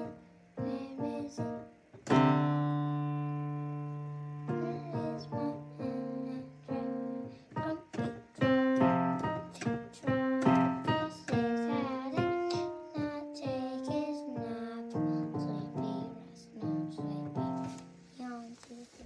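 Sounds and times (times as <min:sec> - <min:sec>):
digital piano melody: 0:00.0 - 0:17.8.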